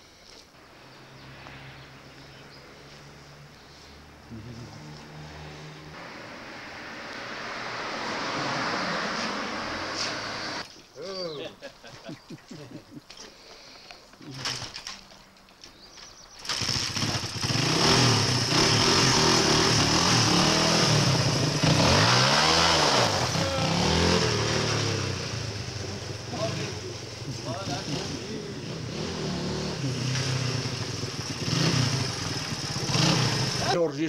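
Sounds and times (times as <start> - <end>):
motorcycle engine revving: 0.8 - 10.6, 16.4 - 33.8.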